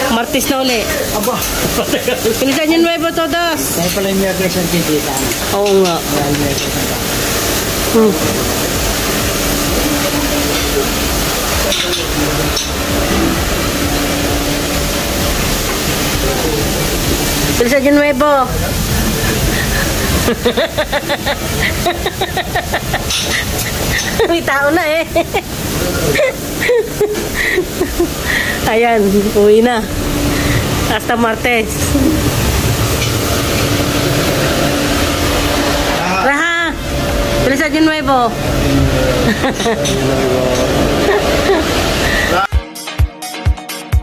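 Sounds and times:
kitchen extractor fans running: 0.0 - 42.5
steady low hum: 0.0 - 42.5
rushing hiss: 3.2 - 36.1, 38.4 - 42.5
low rumble: 27.3 - 42.2.

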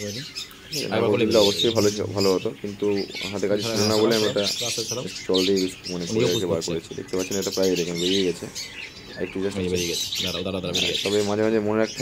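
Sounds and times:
parrot squawking: 0.0 - 12.0.

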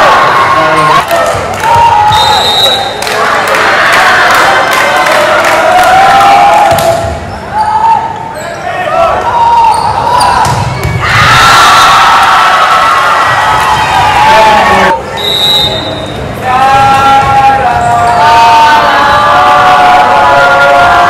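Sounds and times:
people shouting and cheering: 0.0 - 21.0
short high whistle: 2.1 - 2.9, 15.2 - 16.1.

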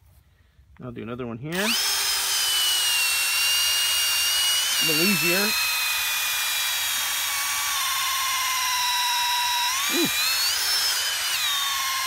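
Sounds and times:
power drill boring into rock: 1.5 - 12.0.

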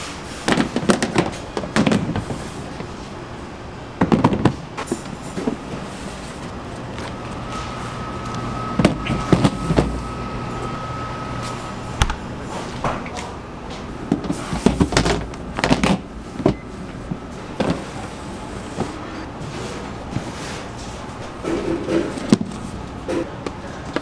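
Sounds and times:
hum with high whine: 0.0 - 24.0
plastic tubs clattering in rack: 0.4 - 2.5, 4.0 - 5.8, 14.1 - 19.0, 21.4 - 23.3.

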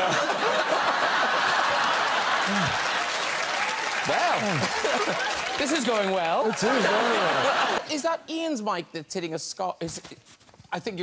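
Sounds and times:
studio audience applauding: 0.0 - 7.8.

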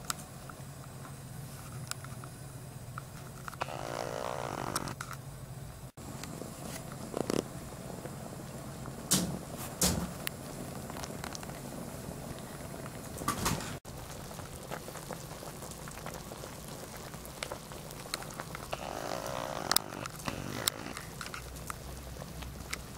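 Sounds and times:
broth boiling and bubbling: 0.0 - 5.1, 5.9 - 22.9.

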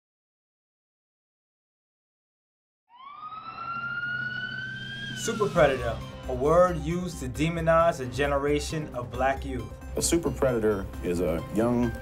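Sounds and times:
police siren wailing: 2.9 - 6.3.

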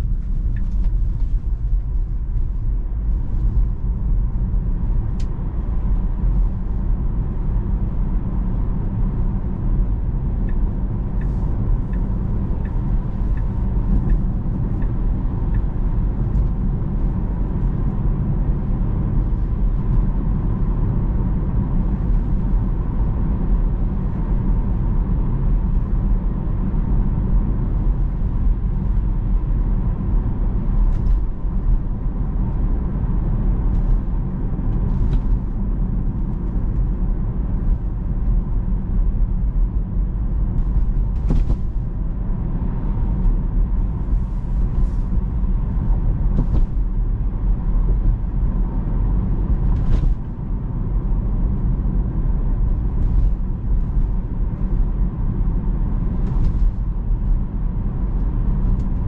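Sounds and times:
road and tyre rumble in car: 0.0 - 59.0.

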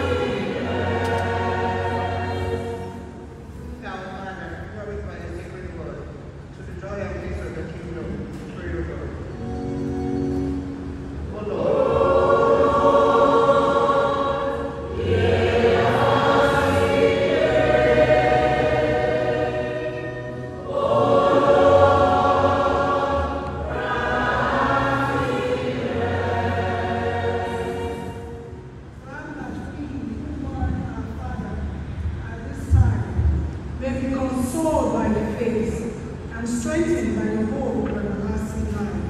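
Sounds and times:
church choir singing: 0.0 - 3.6, 9.4 - 29.0.

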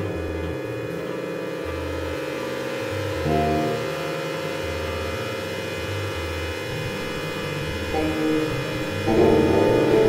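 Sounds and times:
electronic drone: 0.0 - 10.0
low bass notes: 0.0 - 10.0.

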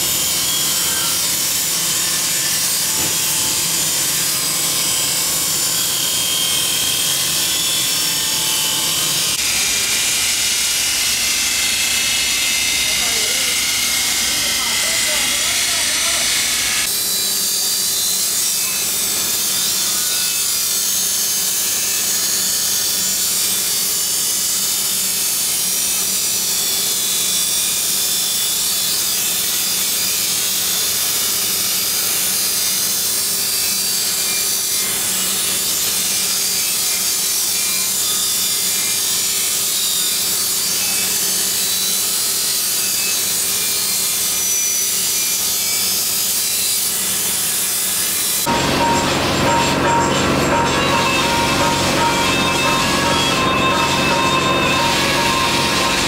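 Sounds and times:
workshop machinery hum: 0.0 - 37.2, 43.8 - 56.0
knife blades grinding on wheels: 0.0 - 56.0.

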